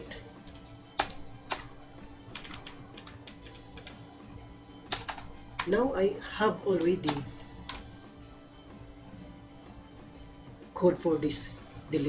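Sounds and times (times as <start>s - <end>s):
keystrokes on computer keyboard: 0.4s - 1.7s, 2.3s - 4.0s, 4.8s - 5.7s, 6.7s - 7.9s.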